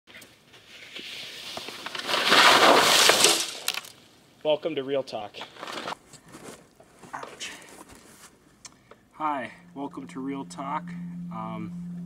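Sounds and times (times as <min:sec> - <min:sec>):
skis scraping through slushy snow: 0:00.8 - 0:03.4.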